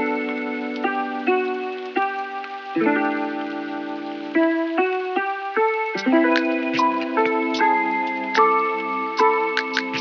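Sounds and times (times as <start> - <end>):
soft keyboard chords: 0.0 - 10.0
ticking percussion: 6.0 - 10.0.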